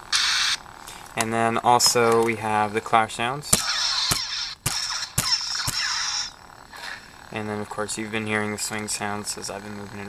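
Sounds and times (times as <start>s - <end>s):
crackling lightsaber clashes: 0.0s - 2.6s, 3.4s - 9.6s.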